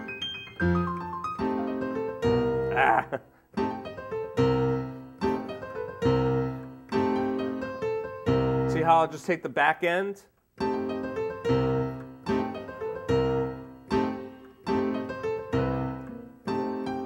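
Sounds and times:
slow stride piano: 0.0 - 9.0, 10.6 - 17.0.

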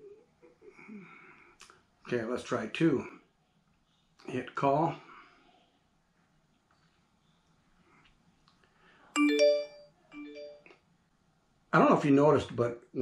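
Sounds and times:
short electronic chime: 9.2 - 10.6.

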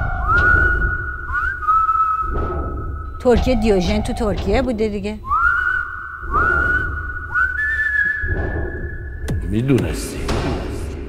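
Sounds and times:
high whistle-like tone sliding up: 0.0 - 4.0, 5.2 - 9.2
low rumble: 0.0 - 7.4, 8.1 - 11.0.

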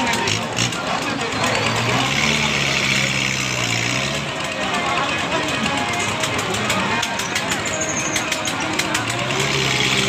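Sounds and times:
loud fairground din: 0.0 - 10.0
ride machinery humming: 0.0 - 10.0.

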